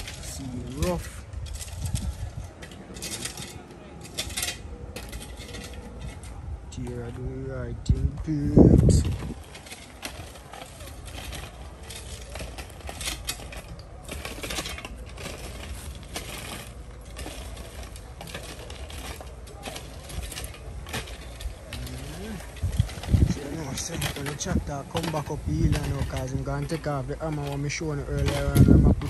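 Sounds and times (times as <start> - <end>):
shovels scraping gravel: 0.0 - 29.0.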